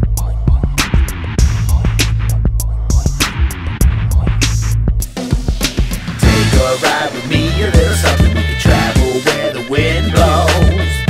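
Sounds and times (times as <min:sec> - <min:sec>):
instrumental hip-hop beat: 0:00.0 - 0:11.0.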